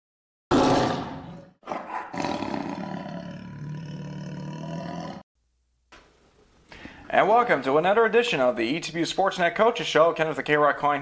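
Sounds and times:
tiger growl: 0.5 - 5.2
tiger roaring: 0.5 - 5.2.

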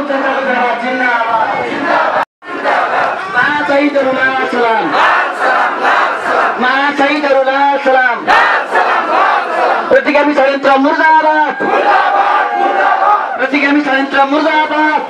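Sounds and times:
crowd shouting slogans: 0.0 - 6.8, 8.1 - 10.0, 11.5 - 13.4.

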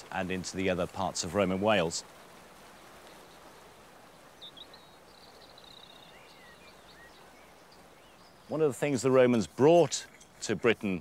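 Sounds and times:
soft outdoor hiss: 0.0 - 11.0
small bird chirping and trilling: 4.3 - 8.5.

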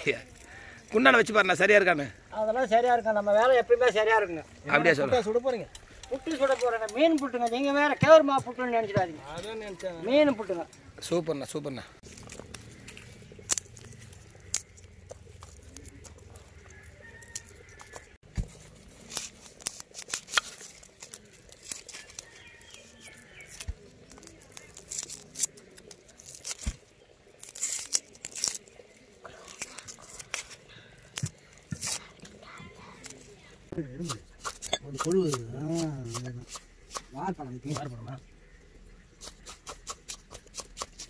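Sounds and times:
garlic skins crackling: 0.0 - 7.9, 9.2 - 41.0.

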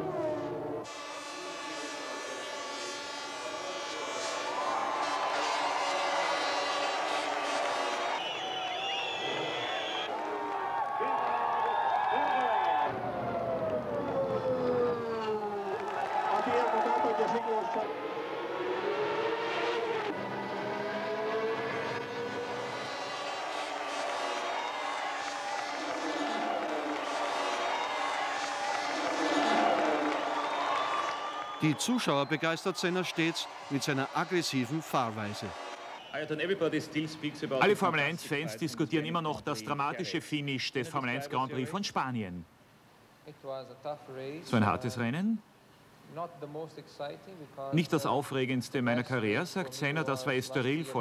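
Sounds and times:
crowd noise: 0.0 - 19.0, 22.1 - 41.7
racing car engines passing: 16.0 - 38.2.

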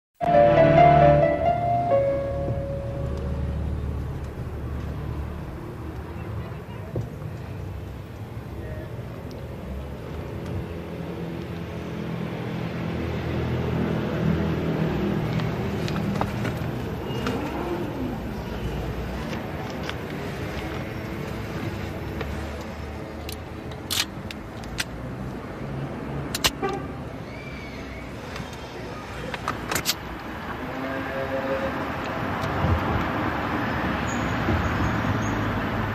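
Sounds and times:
held music note: 0.2 - 3.8
road noise inside car: 0.2 - 35.9
car engine rumble: 0.3 - 26.5.

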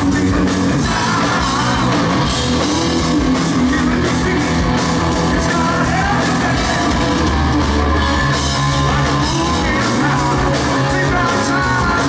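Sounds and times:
hard rock band playing: 0.0 - 12.0
lead singer singing: 0.0 - 12.0.

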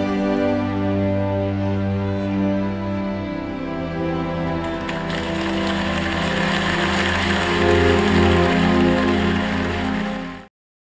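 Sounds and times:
sad orchestral chords: 0.0 - 10.5.

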